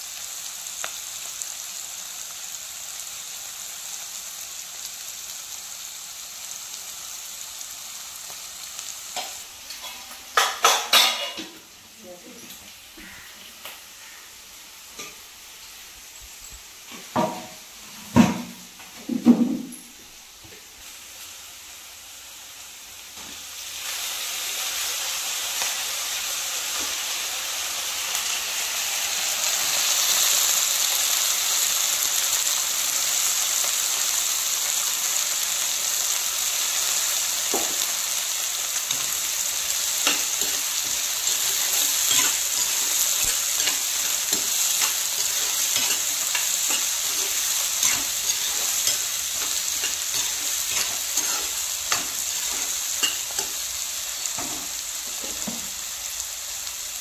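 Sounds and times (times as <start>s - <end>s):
food sizzling in oil: 0.0s - 57.0s
spatula scraping pan: 40.0s - 53.7s.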